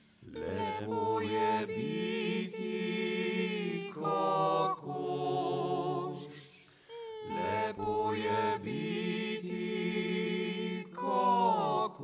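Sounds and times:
voices singing chant-like chord: 0:00.3 - 0:06.5, 0:07.3 - 0:12.0.

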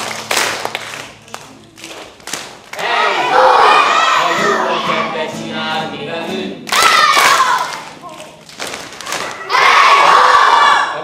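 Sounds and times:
hand claps: 0:00.0 - 0:02.9, 0:06.7 - 0:09.4
group of voices singing: 0:02.8 - 0:08.0.

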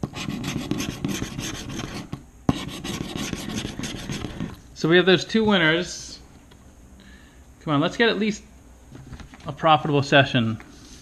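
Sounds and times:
lottery ticket being scratched: 0:00.0 - 0:04.6.

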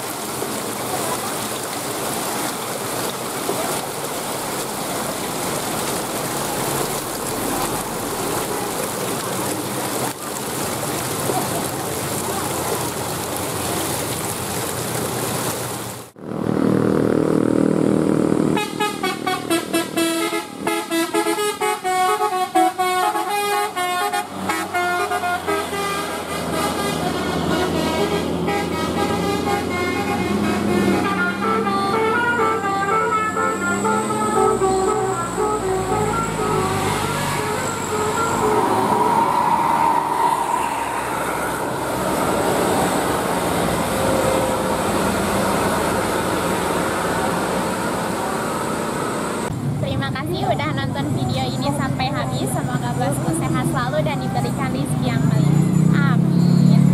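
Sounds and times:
bus engine: 0:00.0 - 0:56.9
passing traffic: 0:00.0 - 0:56.9
multi-tone bus air horn tune: 0:18.5 - 0:42.9.

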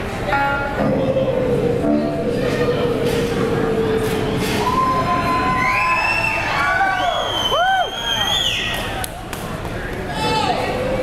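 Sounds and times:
crowd cheering: 0:04.1 - 0:09.2
whoops and whistles: 0:04.6 - 0:08.9.

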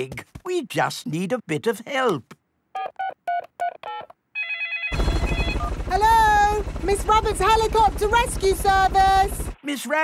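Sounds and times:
phone ringing tone: 0:02.8 - 0:06.4.

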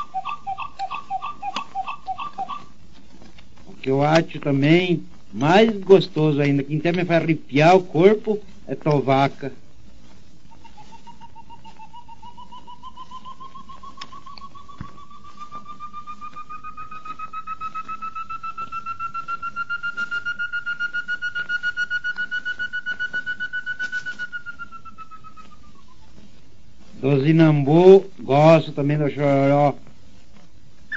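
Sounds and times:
steady hiss: 0:00.0 - 0:30.9
bird song of short whistled notes: 0:10.5 - 0:26.2.

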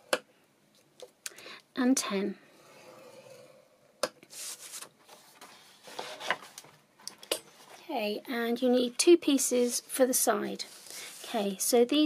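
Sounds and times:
paper sliding and rustling: 0:04.3 - 0:06.8, 0:10.6 - 0:11.5.

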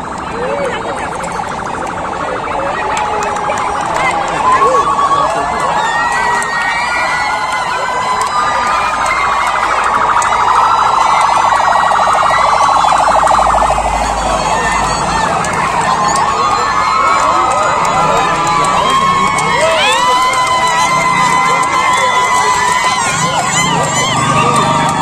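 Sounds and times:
crowd chatter and shouts: 0:00.0 - 0:25.0
police siren wailing: 0:00.0 - 0:25.0.

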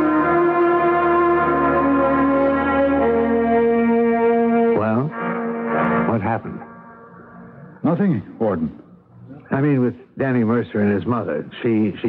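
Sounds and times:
held horn-like chord: 0:00.0 - 0:08.0.

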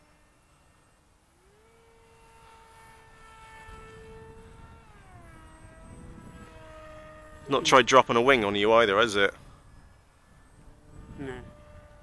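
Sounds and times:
distant model plane motor whine: 0:00.0 - 0:12.0.

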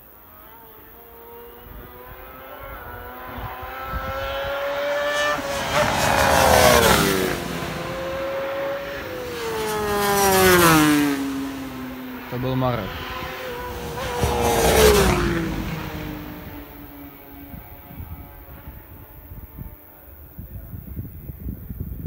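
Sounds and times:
superbikes passing at speed: 0:00.0 - 0:21.8.

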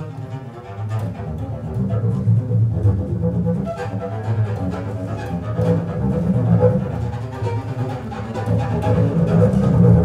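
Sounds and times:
bowed double bass: 0:00.0 - 0:10.0.

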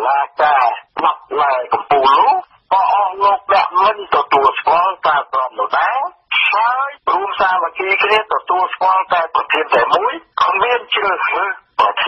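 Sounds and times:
radio news reader talking: 0:00.0 - 0:12.0.

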